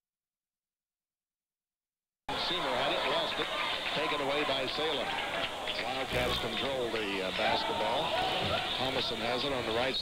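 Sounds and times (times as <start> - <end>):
overlapping crowd voices: 2.3 - 9.9.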